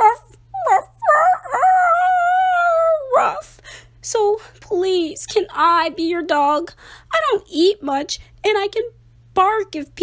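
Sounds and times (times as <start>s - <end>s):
person imitating dog bark: 0.0s - 3.4s.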